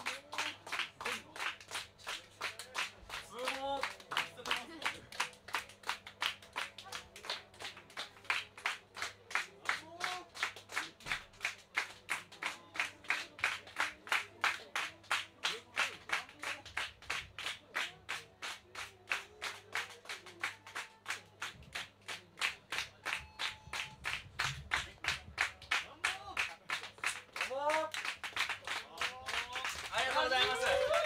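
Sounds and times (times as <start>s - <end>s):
audience clapping in unison: 0.0s - 31.0s.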